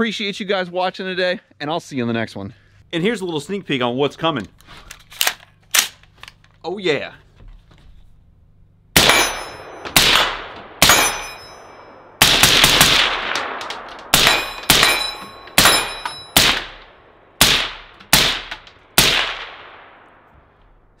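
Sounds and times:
gunshots with ringing echo: 0:09.0 - 0:20.3.

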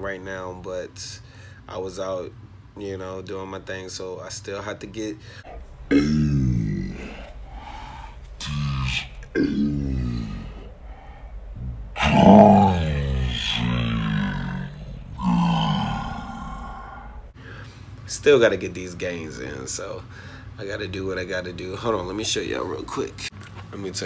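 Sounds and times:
man grunting with effort: 0:05.9 - 0:07.3, 0:08.4 - 0:10.7, 0:11.6 - 0:17.1.

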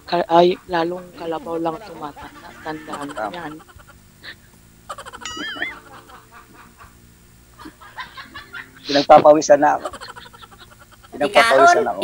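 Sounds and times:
laughter over video call: 0:00.0 - 0:07.0, 0:07.6 - 0:09.1, 0:09.7 - 0:11.2
high wavering squeal: 0:01.1 - 0:04.4.

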